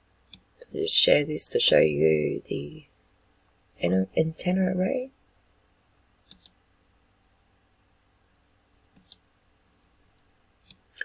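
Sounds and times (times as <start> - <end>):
computer mouse clicks: 0.2 - 0.5, 6.2 - 6.6, 8.9 - 9.3, 10.6 - 10.9.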